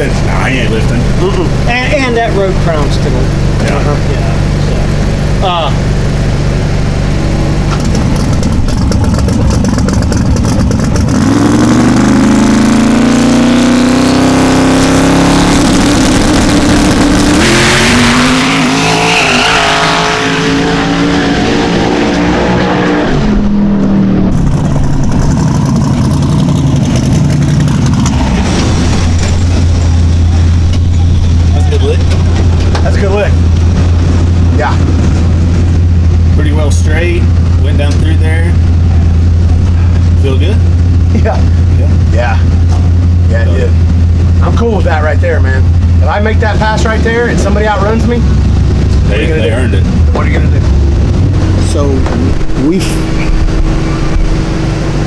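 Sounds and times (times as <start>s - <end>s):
low hum: 0.0s - 13.9s, 19.7s - 55.0s
drag car engine revving: 0.0s - 55.0s
loud rush of noise: 15.0s - 55.0s.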